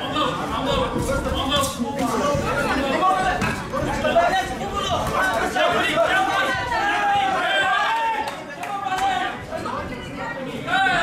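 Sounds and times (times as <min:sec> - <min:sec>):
crowd chatter and calling out: 0:00.0 - 0:11.0.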